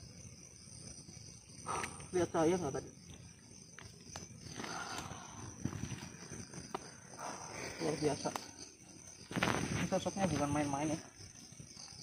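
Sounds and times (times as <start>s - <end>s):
night insects chirring: 0.0s - 12.0s
rustling in leaves and undergrowth: 9.0s - 10.9s.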